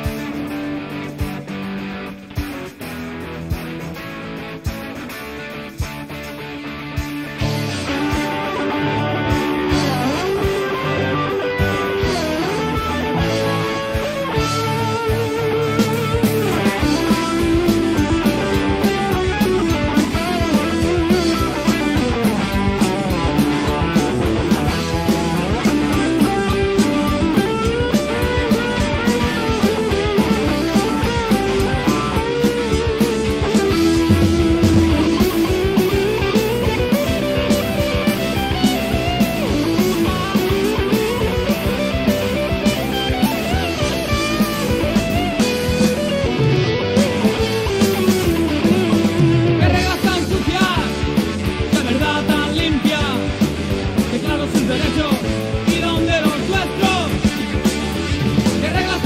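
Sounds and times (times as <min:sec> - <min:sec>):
bass guitar: 0:00.0 - 0:59.0
distorted electric guitar lead: 0:00.0 - 0:59.0
drums: 0:00.0 - 0:59.0.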